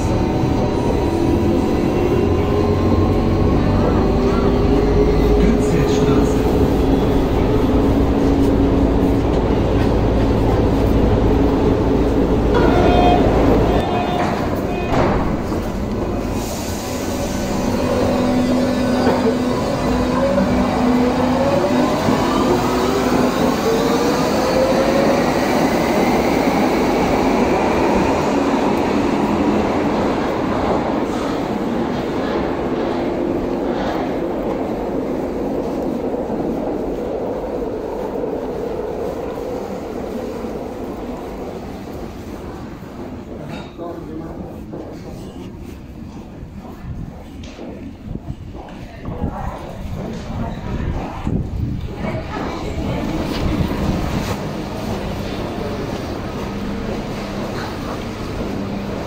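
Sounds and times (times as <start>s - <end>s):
train rumbling: 0.0s - 59.0s.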